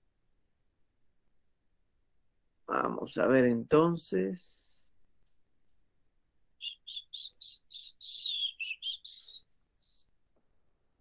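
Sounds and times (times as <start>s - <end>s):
bird chirping: 6.6s - 10.2s.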